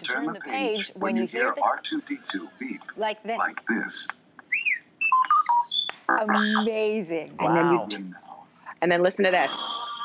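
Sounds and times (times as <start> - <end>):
robot beeps and whistles: 4.5 - 6.7.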